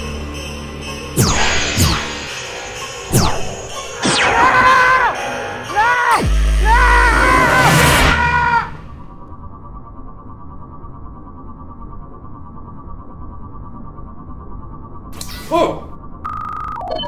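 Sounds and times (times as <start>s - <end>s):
deep rumble: 1.2s - 15.2s
man screaming: 4.2s - 9.0s.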